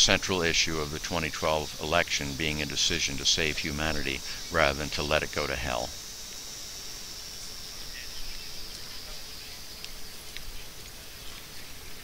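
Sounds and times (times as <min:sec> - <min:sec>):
insect chorus drone: 0:00.0 - 0:12.0
faint ticks: 0:08.2 - 0:09.0, 0:09.8 - 0:11.6.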